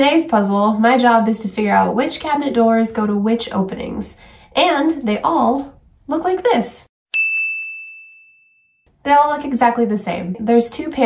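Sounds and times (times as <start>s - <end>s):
bell-like chime: 7.1s - 8.8s.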